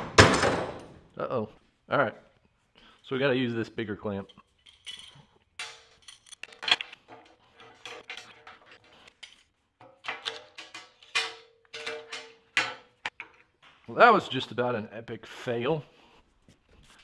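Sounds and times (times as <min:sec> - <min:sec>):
metal clamp clanking on steel: 0:04.3 - 0:13.5.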